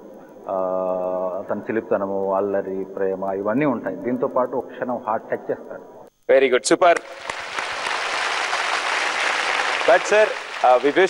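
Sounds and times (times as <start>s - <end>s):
audience applauding: 7.0s - 11.0s.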